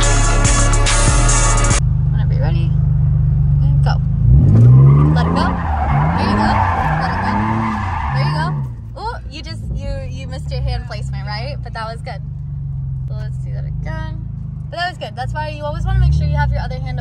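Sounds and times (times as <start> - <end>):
car engine revving: 0.0 - 17.0
tyres squealing: 4.5 - 12.1.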